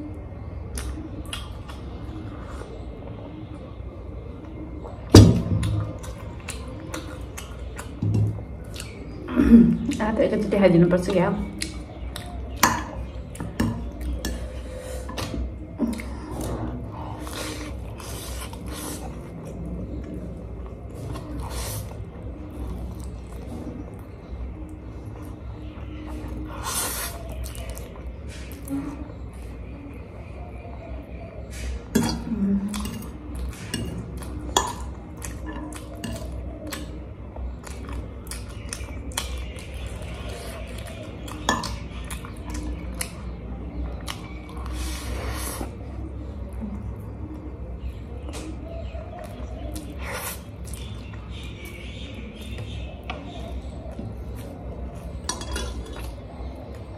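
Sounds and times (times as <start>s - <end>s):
chewing: 4.9s - 10.1s, 11.4s - 29.4s, 31.5s - 47.4s, 48.3s - 56.9s.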